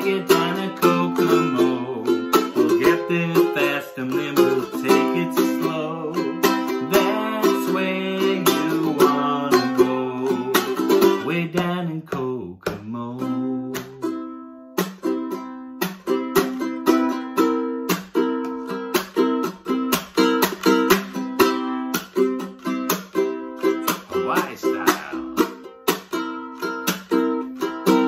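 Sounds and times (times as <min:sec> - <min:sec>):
ukulele strumming chords: 0:00.0 - 0:28.0.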